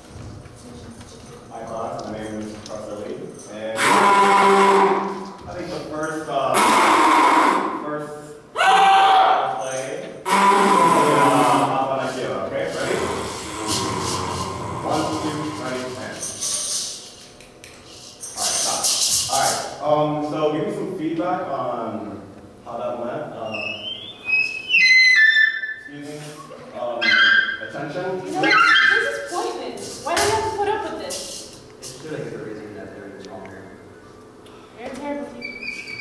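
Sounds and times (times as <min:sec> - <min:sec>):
clarinet playing high notes: 0:03.8 - 0:05.3, 0:06.5 - 0:07.7, 0:10.3 - 0:11.7
people talking: 0:09.5 - 0:14.2, 0:14.8 - 0:16.3, 0:25.9 - 0:33.8, 0:34.8 - 0:35.4
steady low drone: 0:12.7 - 0:16.2
gourd shaker rattling: 0:15.8 - 0:19.6.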